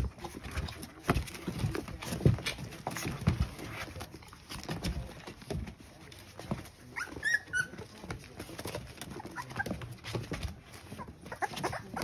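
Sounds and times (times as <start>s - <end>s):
soft scuffling: 0.0s - 12.0s
puppies whimpering: 6.9s - 8.1s, 8.8s - 12.0s.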